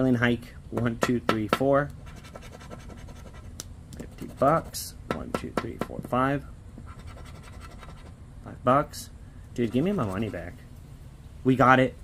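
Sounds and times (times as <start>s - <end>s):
scraping a scratch-off ticket: 2.0s - 4.9s, 6.9s - 8.1s, 9.6s - 10.6s.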